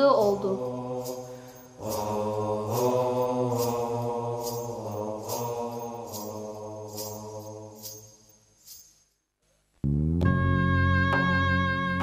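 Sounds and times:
low voice chanting: 0:00.0 - 0:08.1.

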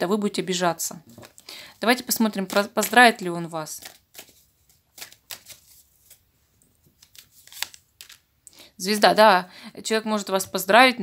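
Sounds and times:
cards rustling and flicking: 0:01.0 - 0:08.3.

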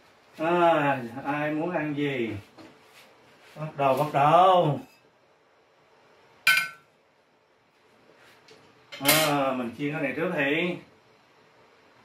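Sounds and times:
ceramic dishware clink: 0:06.5 - 0:06.9.

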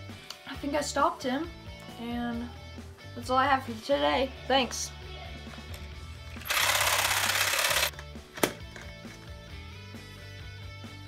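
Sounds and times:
background music: 0:00.0 - 0:11.0
harsh mechanical rattling buzz: 0:06.4 - 0:07.9.

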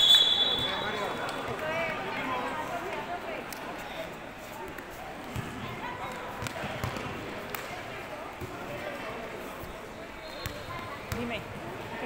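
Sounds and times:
chattering voices: 0:00.0 - 0:12.0
basketball bouncing on gym floor: 0:06.4 - 0:07.1.

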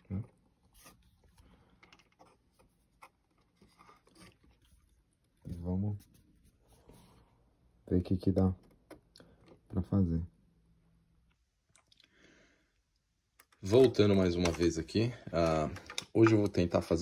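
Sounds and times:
small plastic parts clicking: 0:15.4 - 0:16.6.

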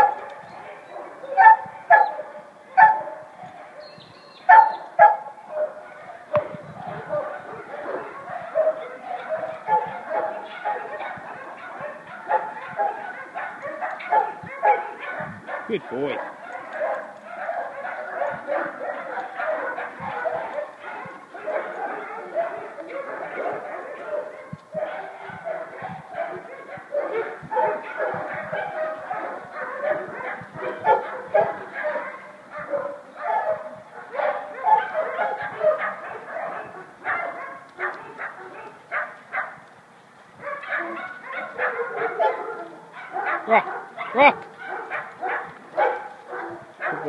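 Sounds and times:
dogs barking: 0:00.0 - 0:47.0.

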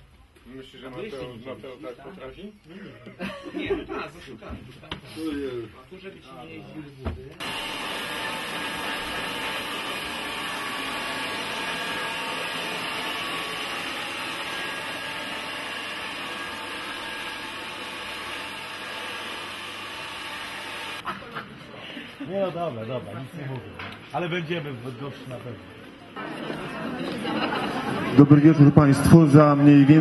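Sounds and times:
hair dryer running: 0:07.4 - 0:21.0.

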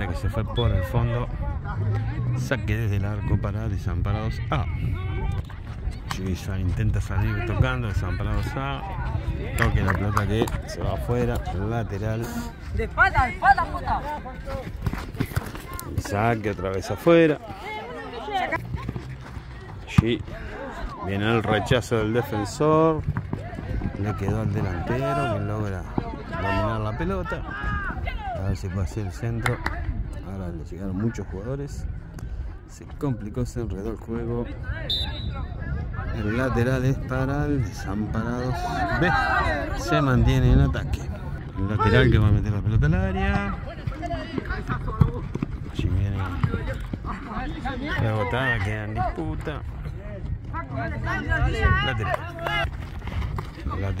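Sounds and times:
people calling out and talking: 0:00.0 - 0:54.0.

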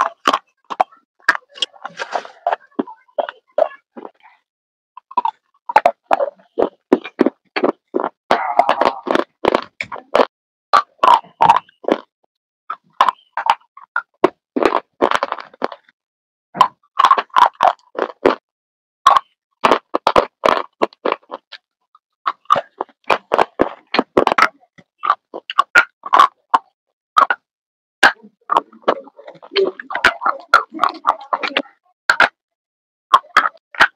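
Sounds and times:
food crunching and chewing: 0:00.0 - 0:04.4, 0:05.0 - 0:12.1, 0:12.7 - 0:16.0, 0:16.6 - 0:18.4, 0:19.1 - 0:21.7, 0:22.3 - 0:32.4, 0:33.1 - 0:33.9.

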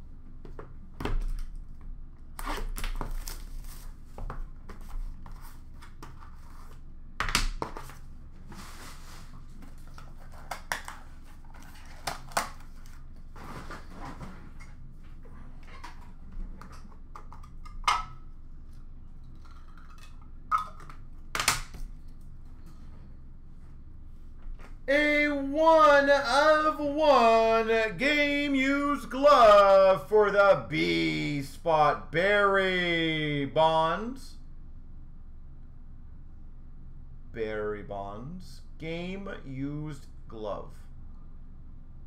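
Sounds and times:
packaging rustling and tearing: 0:02.6 - 0:04.0, 0:09.6 - 0:14.2.

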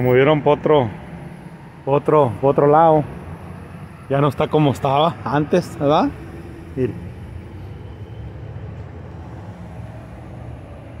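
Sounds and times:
low traffic rumble: 0:00.0 - 0:11.0.

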